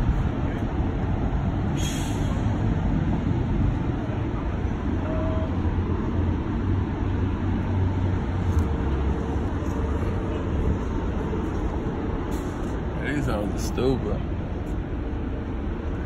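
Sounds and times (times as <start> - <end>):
city traffic rumble: 0.0 - 16.0.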